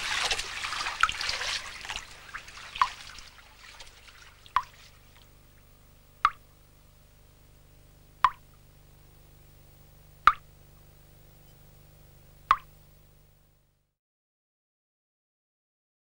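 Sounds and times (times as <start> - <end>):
faint low hum: 0.0 - 13.9
drops plopping into water: 2.7 - 3.0, 6.2 - 6.4, 12.5 - 12.7.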